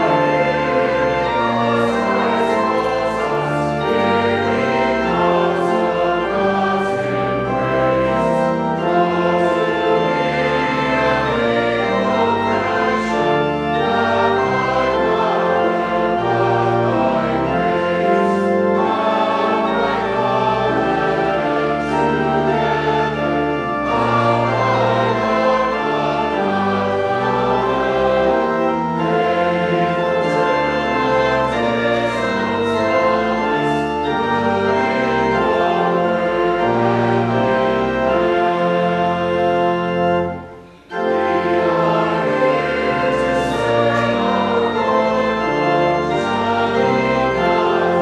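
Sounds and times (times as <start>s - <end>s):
church choir singing: 0.0s - 48.0s
low accompaniment: 0.0s - 48.0s
organ chords: 0.0s - 48.0s.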